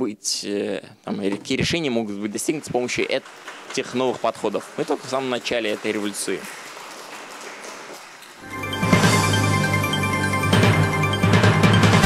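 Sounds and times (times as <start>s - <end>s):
audience applause: 2.1s - 10.0s
theme music: 8.4s - 12.0s.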